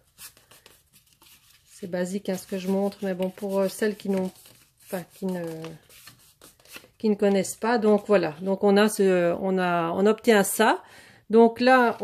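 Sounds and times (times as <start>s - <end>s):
cardstock rustling and tapping: 0.1s - 8.1s
woman speaking: 1.8s - 5.8s, 7.0s - 12.0s.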